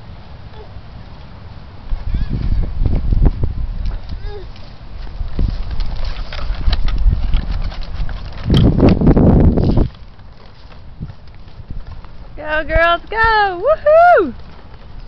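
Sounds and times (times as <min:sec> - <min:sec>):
walking footsteps: 0:01.2 - 0:15.0
plastic tricycle rattling on concrete: 0:01.9 - 0:13.6, 0:14.2 - 0:15.0.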